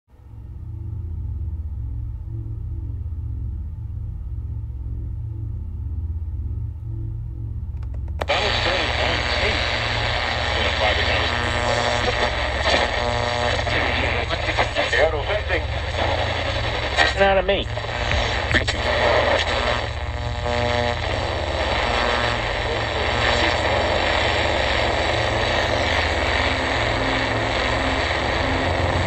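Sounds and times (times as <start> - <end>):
pulsing bass line: 0.1 - 29.0
radio static: 8.1 - 29.0
garbled broadcast voices: 8.2 - 29.0.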